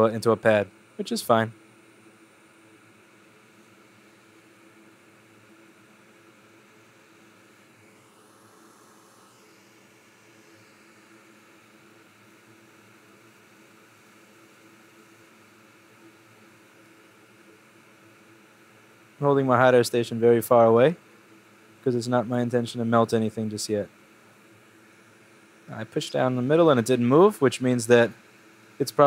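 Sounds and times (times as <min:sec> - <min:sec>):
hot air station hissing and humming: 0:00.0 - 0:29.0.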